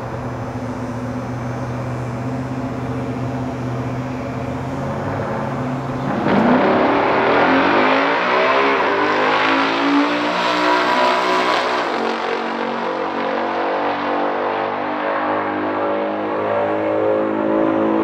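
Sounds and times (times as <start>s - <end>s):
drag car engines accelerating: 0.0s - 18.0s.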